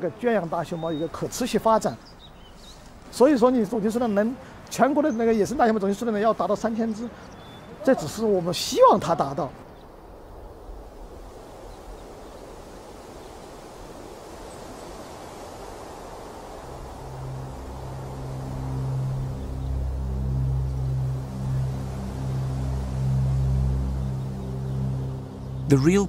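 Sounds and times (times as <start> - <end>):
soft rushing hiss: 0.0 - 25.7
low droning music: 16.6 - 26.0.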